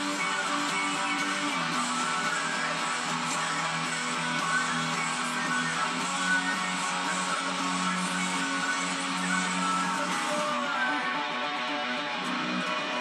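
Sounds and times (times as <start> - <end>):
electric guitar rock riff: 0.0 - 13.0.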